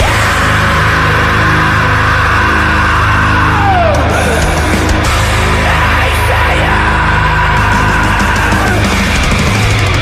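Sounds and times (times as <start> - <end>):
distorted guitars: 0.0 - 10.0.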